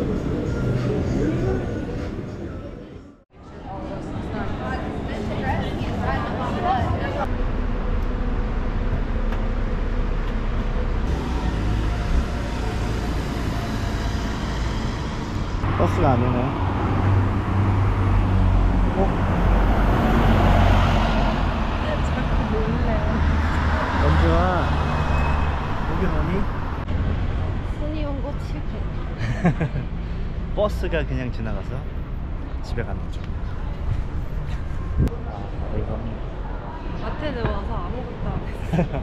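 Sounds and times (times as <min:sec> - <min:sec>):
vehicles passing: 0:00.0 - 0:39.0.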